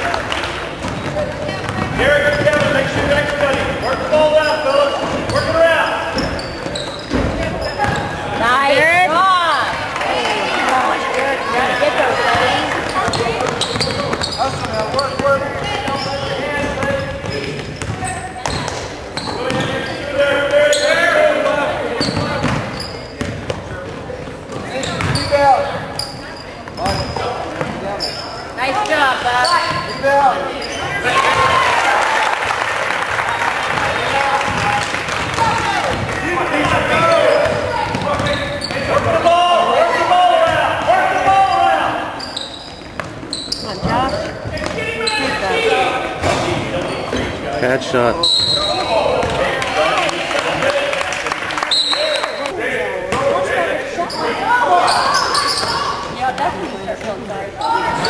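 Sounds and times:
spectators' voices and shouts: 0.0s - 58.0s
basketball bouncing on hardwood floor: 0.8s - 3.7s.

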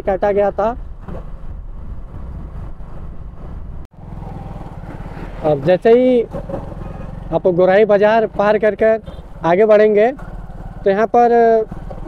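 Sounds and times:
road noise: 0.0s - 12.0s
vehicle engine running: 2.0s - 12.0s.

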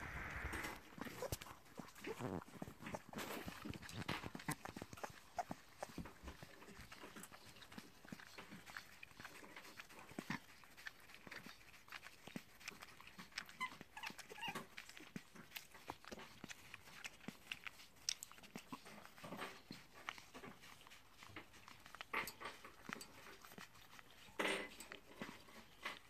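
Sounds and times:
wet chewing and smacking: 0.1s - 26.0s.

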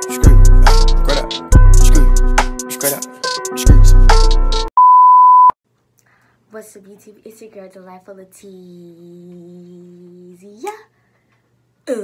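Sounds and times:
girl talking: 6.5s - 10.9s.

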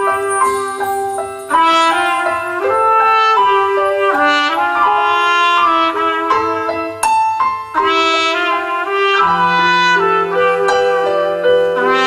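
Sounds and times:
saxophone playing: 0.0s - 6.8s
trumpet playing melody: 0.0s - 7.1s, 7.7s - 12.0s
stage piano: 0.0s - 12.0s.

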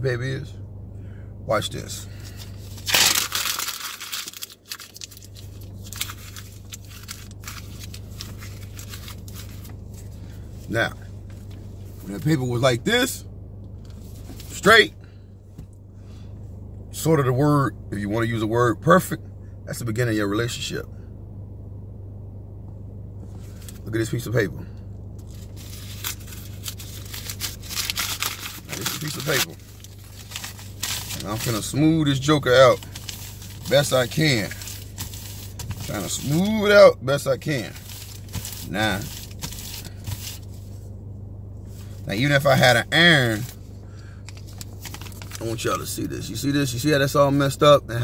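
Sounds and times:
paper crumpling: 2.3s - 10.2s, 25.2s - 31.8s, 32.6s - 36.5s, 37.7s - 40.6s, 44.2s - 45.6s.

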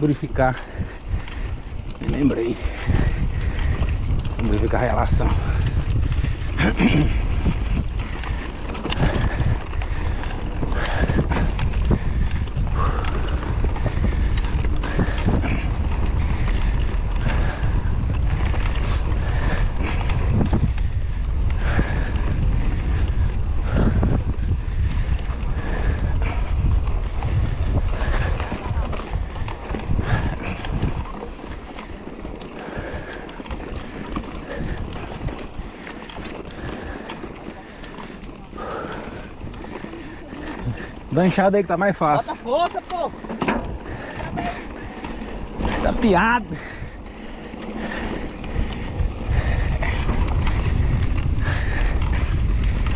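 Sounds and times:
bike tyres on dirt: 0.0s - 52.9s
dry bike chain noise: 0.0s - 52.9s
wind rumble on microphone: 0.0s - 52.9s.

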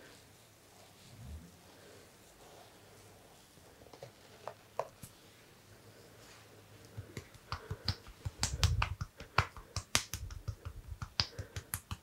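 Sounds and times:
finger snaps and clicks: 6.8s - 12.0s
muffled thumps of hands on head: 7.0s - 11.8s.

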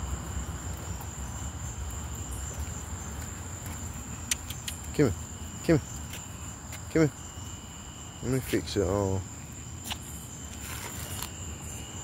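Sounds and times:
crickets trilling: 0.0s - 12.0s
phone rustling against harness: 9.8s - 11.4s.

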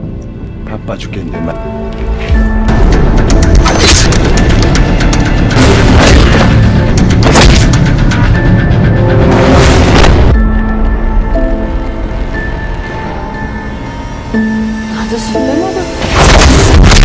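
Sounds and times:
film music score: 0.0s - 17.0s.

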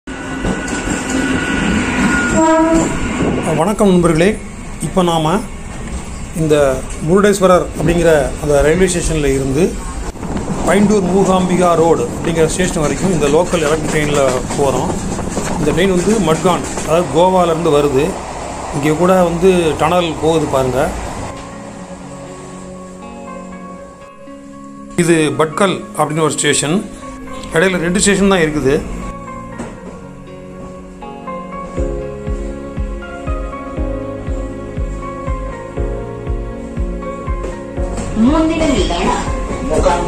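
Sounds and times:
train wheels rumbling: 0.1s - 22.6s
person speaking: 10.6s - 15.0s.

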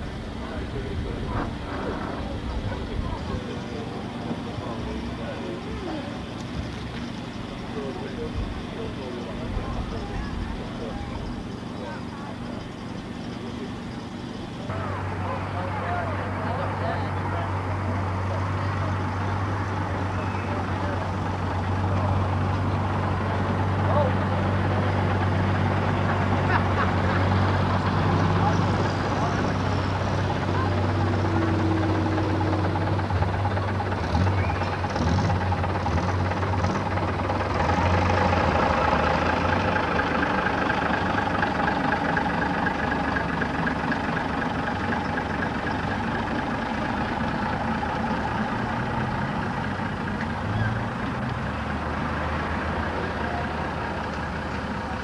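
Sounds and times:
bus diesel engine droning: 0.0s - 55.0s.

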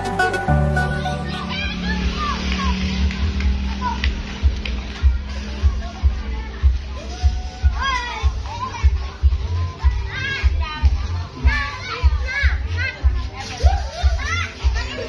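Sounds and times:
music with heavy drum beat: 0.0s - 1.6s, 3.5s - 15.0s
children shouting: 0.0s - 4.2s.

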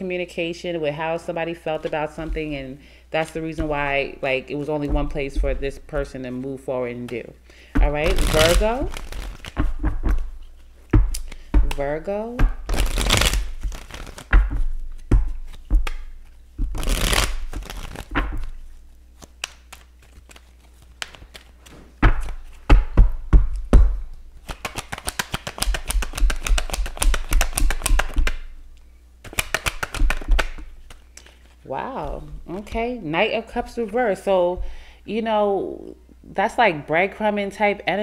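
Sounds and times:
cards being shuffled: 7.8s - 11.8s, 12.4s - 28.5s, 29.2s - 32.7s
card snaps: 19.2s - 20.4s, 21.0s - 21.5s, 29.2s - 31.4s.

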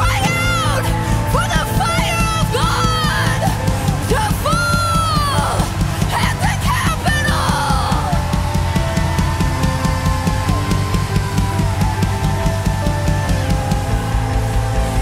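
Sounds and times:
worship band playing: 0.0s - 15.0s.

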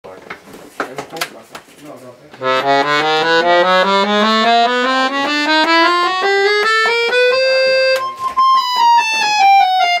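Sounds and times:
accordion handling knocks: 2.4s - 10.0s.

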